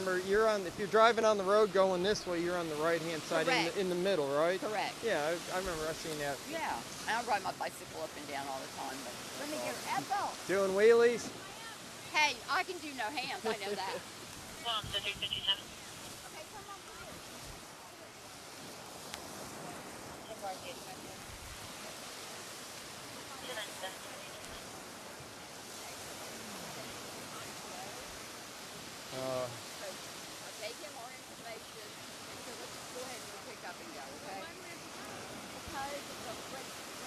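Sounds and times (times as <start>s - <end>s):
faint distant voices: 0.0s - 22.6s, 23.2s - 37.0s
surf breaking on shore: 0.0s - 37.0s
wind: 0.0s - 37.0s.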